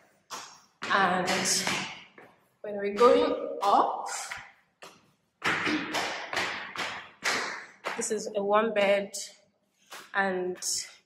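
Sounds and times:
footsteps climbing stairs: 0:00.0 - 0:04.4.

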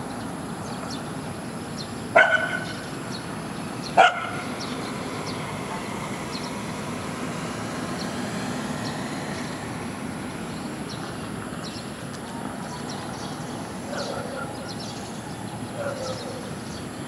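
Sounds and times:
dog barking: 0:02.2 - 0:02.8, 0:04.0 - 0:04.5, 0:13.9 - 0:14.7, 0:15.8 - 0:16.5.

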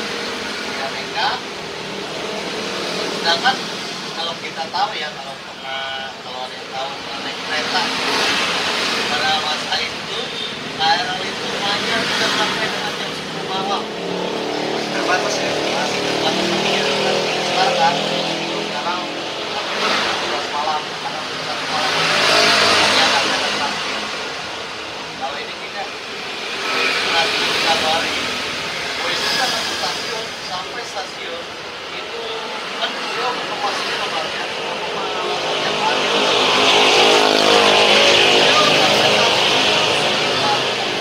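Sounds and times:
low conversation: 0:00.0 - 0:41.0
vehicles passing: 0:00.0 - 0:41.0.

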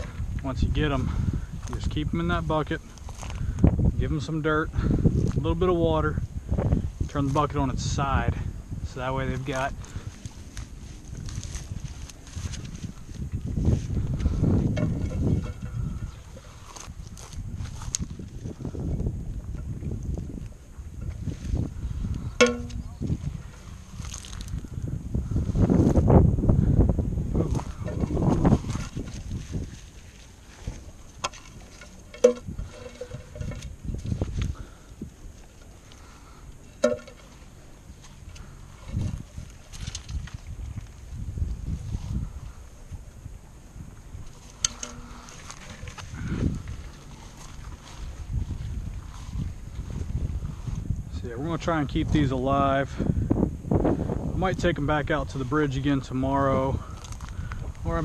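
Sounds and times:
wind rumbling on microphone: 0:00.0 - 0:58.0.

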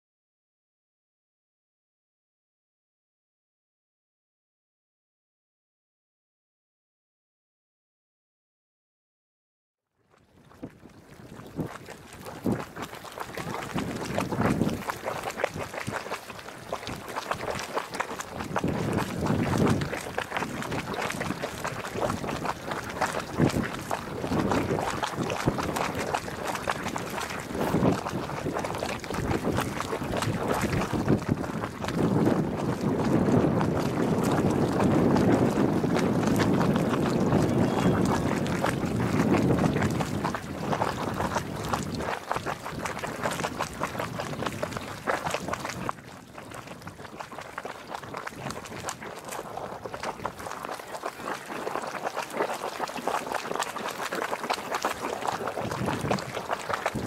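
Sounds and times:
geyser pool gurgling and sloshing: 0:10.1 - 0:57.0.

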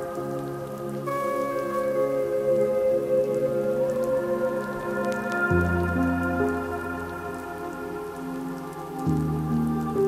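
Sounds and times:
sampled rain patter: 0:00.0 - 0:10.0.

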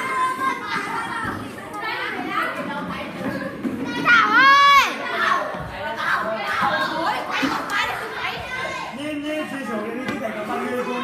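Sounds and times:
children laughing: 0:00.0 - 0:02.7
children talking and shouting: 0:00.0 - 0:11.0.

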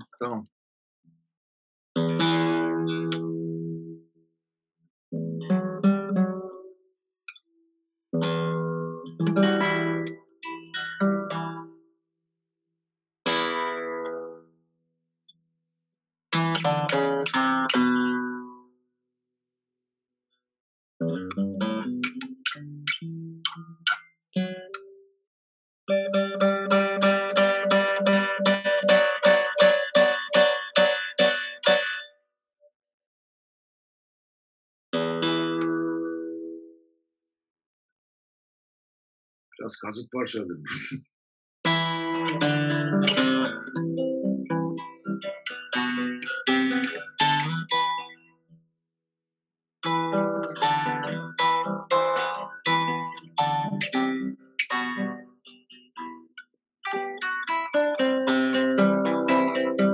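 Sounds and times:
acoustic guitar strumming: 0:16.4 - 0:18.6, 0:25.9 - 0:32.1, 0:35.0 - 0:36.4, 0:41.7 - 0:48.2, 0:49.8 - 0:56.2, 0:56.9 - 0:59.9.

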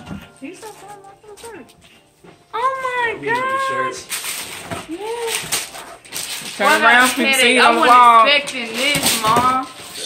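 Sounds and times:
paper rustling and crackling: 0:03.3 - 0:10.0.

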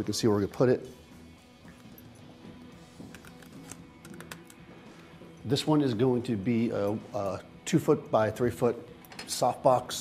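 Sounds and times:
soft background music: 0:00.0 - 0:10.0
footsteps and movement clicks: 0:01.6 - 0:04.6.

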